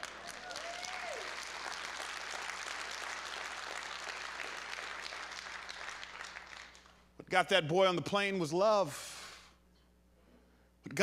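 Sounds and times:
congregation applauding: 0.0 - 7.1.

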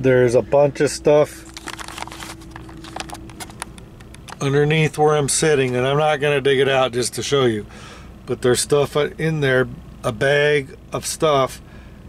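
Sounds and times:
faint steady hum: 0.0 - 12.0
handling clicks and knocks: 1.6 - 4.5.

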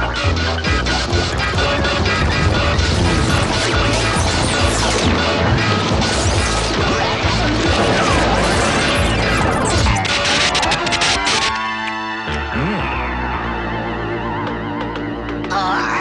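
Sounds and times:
background music: 0.0 - 16.0
cartoon crashes: 6.2 - 11.6.

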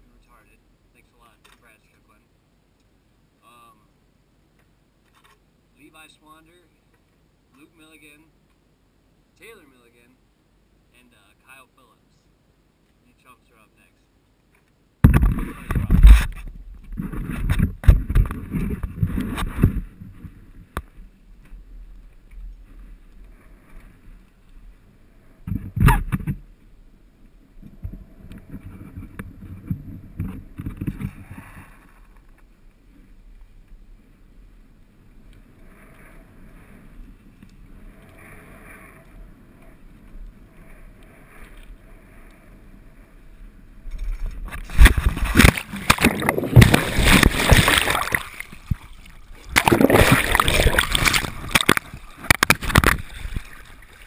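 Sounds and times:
soft hiss: 0.0 - 17.5, 19.4 - 29.4, 30.0 - 49.6
wind rumbling on microphone: 15.0 - 54.0
wind buffeting microphone: 27.6 - 31.5
camera handling bumps: 50.8 - 53.1.

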